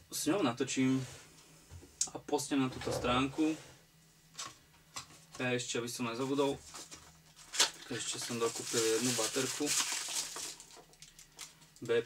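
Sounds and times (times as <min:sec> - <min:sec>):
packaging rustling: 0:06.6 - 0:11.9.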